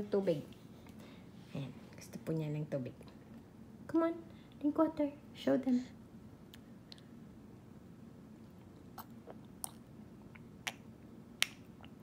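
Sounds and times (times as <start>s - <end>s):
mouth clicks and smacks: 8.9s - 12.0s.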